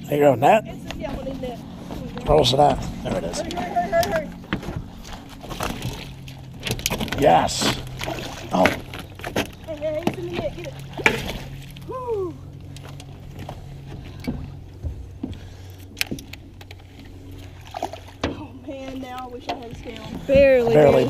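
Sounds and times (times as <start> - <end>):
boat low hum: 0.0 - 21.0.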